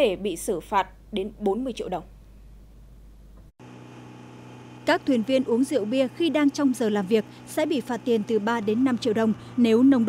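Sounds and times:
low boat engine hum: 0:03.6 - 0:10.0.

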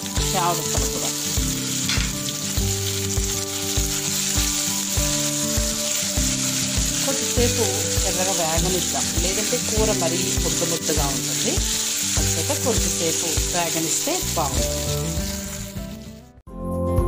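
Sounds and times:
food sizzling in hot oil: 0:00.0 - 0:16.4
spatula stirring: 0:01.2 - 0:13.9.

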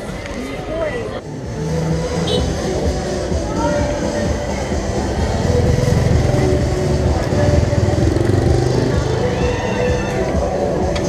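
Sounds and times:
background music: 0:00.0 - 0:11.0
voices: 0:00.0 - 0:11.0
motorbike engine running: 0:04.4 - 0:09.2.

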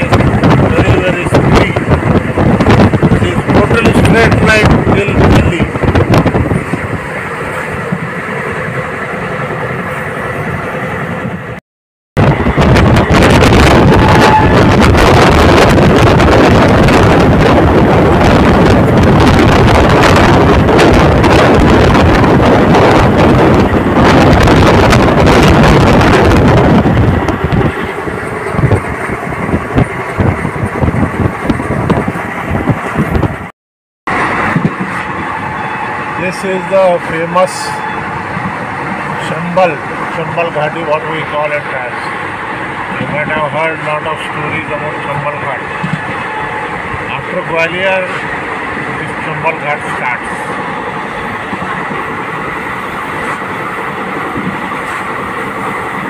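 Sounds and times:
wind on microphone: 0:00.0 - 0:08.1, 0:12.2 - 0:33.5, 0:34.1 - 0:36.1
train rushing on rails: 0:00.0 - 0:11.6, 0:12.2 - 0:33.5, 0:34.1 - 0:56.0.

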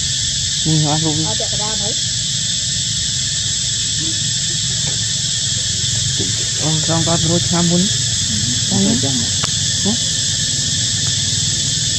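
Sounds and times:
high-pitched insect chorus: 0:00.0 - 0:11.9
low background rumble: 0:00.0 - 0:11.9.

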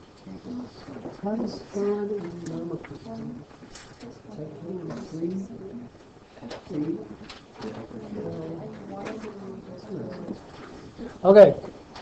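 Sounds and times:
murmur of students' voices: 0:00.0 - 0:12.0.

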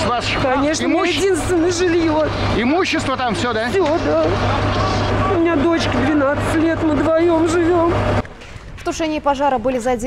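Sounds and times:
steady low hum: 0:00.0 - 0:09.6.

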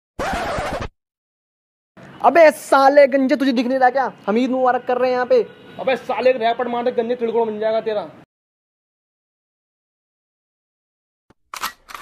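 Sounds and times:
harsh scratch sound effect: 0:00.2 - 0:00.9.

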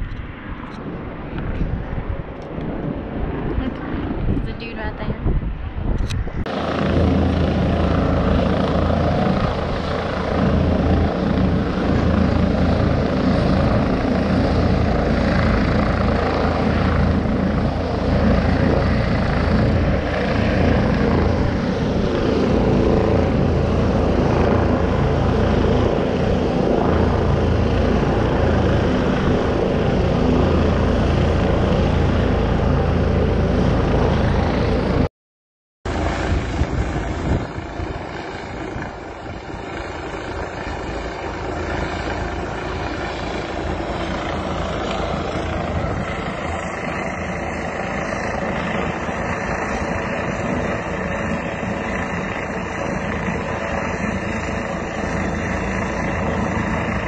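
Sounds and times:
helicopter rotor noise: 0:00.0 - 0:35.1, 0:35.9 - 0:57.0.

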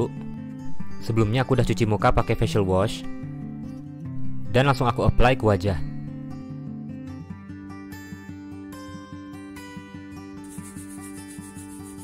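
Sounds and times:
acoustic guitar music: 0:00.0 - 0:12.0
palms rubbing together: 0:10.4 - 0:12.0.

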